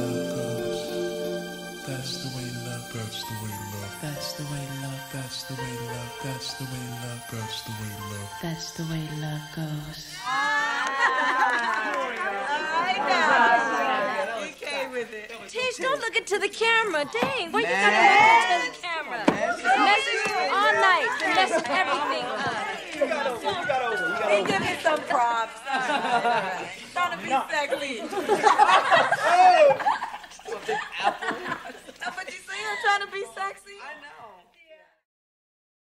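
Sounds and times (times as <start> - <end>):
voices chattering: 0.0 - 10.2, 11.9 - 33.8.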